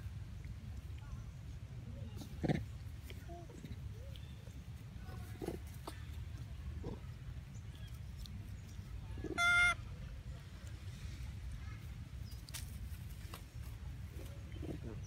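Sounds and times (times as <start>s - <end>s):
baby monkey high-pitched cry: 9.3s - 9.8s
baby monkey squeaks: 9.3s - 9.8s.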